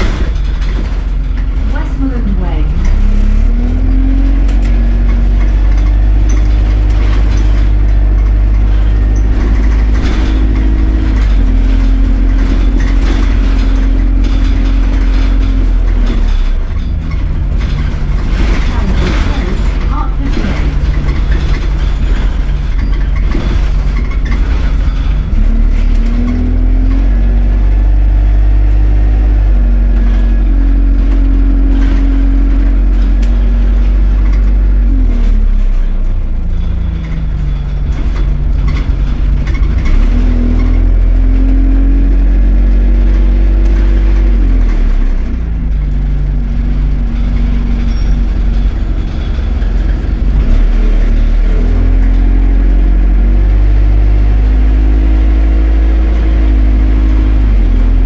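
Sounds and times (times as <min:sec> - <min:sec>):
bus engine accelerating: 0:00.0 - 0:58.0.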